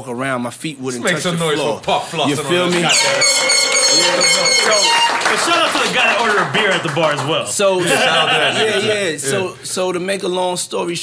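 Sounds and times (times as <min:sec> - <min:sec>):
men laughing and talking: 0:01.0 - 0:09.7.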